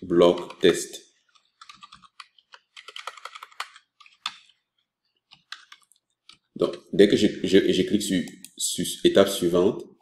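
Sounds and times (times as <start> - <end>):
typing on computer keyboard: 0.3 - 0.7, 1.3 - 4.6, 5.3 - 6.4.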